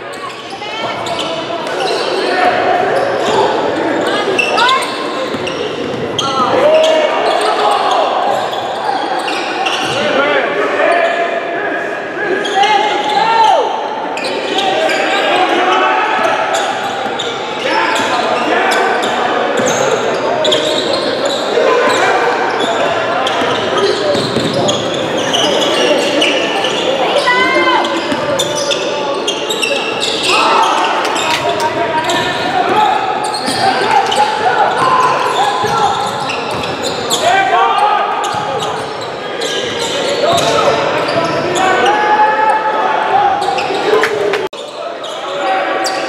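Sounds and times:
spectators talking: 0.0s - 46.0s.

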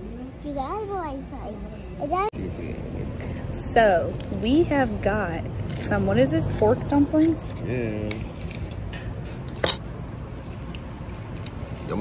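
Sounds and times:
tableware clinking: 9.3s - 9.9s.

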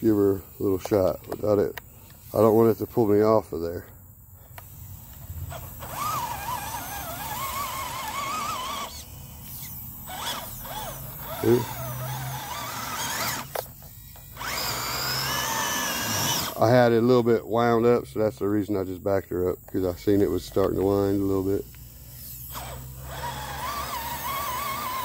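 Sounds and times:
electric motor whine: 4.4s - 17.3s, 19.7s - 25.0s
winch winding: 5.5s - 16.6s, 22.3s - 25.0s.

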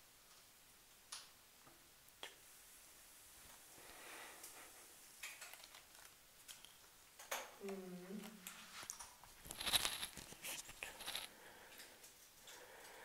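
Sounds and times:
objects clicking and rustling: 5.2s - 13.0s
low murmured voice: 7.6s - 8.4s
clattering rustle: 8.5s - 11.3s.

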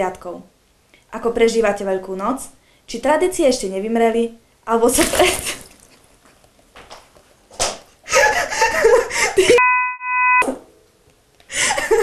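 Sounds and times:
woman laughing: 8.1s - 9.6s, 11.5s - 12.0s
censor bleep: 9.6s - 10.6s.

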